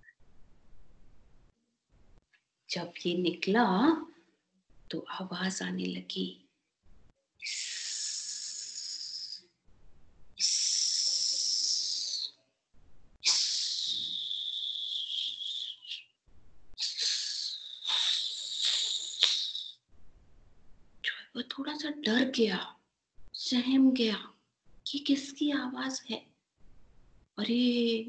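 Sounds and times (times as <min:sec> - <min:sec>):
person hissing: 0:07.4 - 0:09.4, 0:10.4 - 0:12.3, 0:13.2 - 0:16.0, 0:16.8 - 0:19.8.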